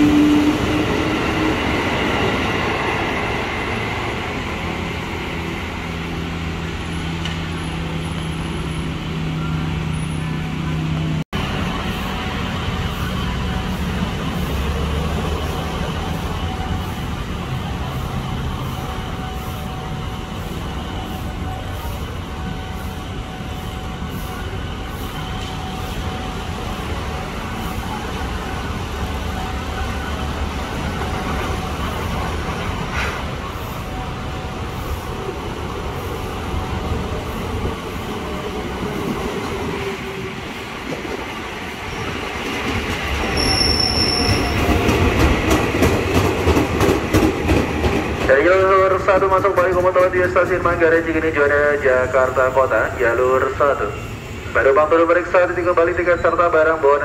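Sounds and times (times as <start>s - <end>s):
train brake squeal: 43.3s - 44.9s.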